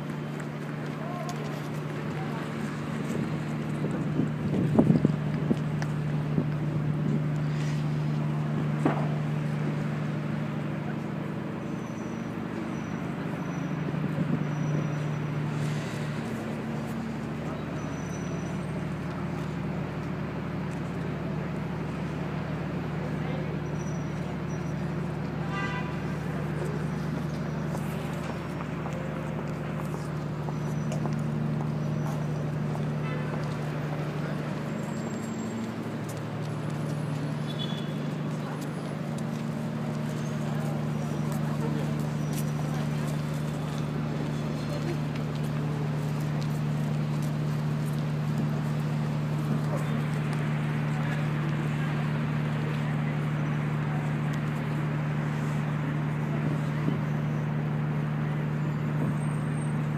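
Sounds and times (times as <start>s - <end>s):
wind on microphone: 3.1s - 5.6s.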